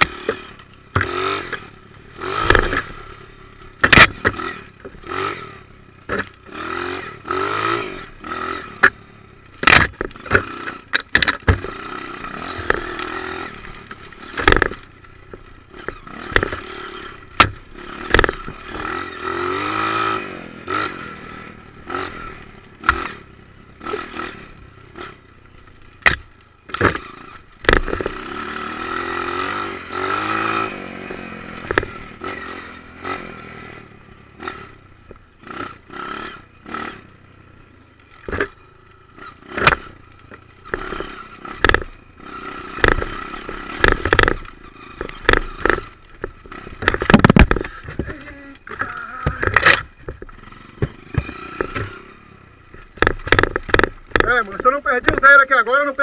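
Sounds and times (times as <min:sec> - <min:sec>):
dirt bike engine revving: 0:00.0 - 0:56.0
knocks and rattles of bike: 0:00.0 - 0:56.0.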